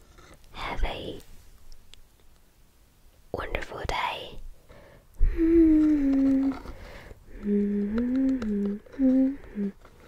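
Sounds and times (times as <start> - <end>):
woman whispering: 0.5 - 1.3, 3.3 - 4.4.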